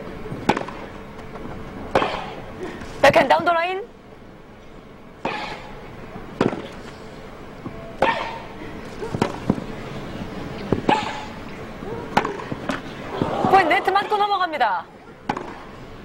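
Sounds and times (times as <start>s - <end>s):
racket hitting tennis ball: 0.4s - 0.9s, 1.9s - 2.4s, 5.2s - 5.7s, 6.4s - 6.8s, 8.0s - 9.7s, 10.7s - 11.4s, 12.1s - 14.2s, 15.2s - 15.7s.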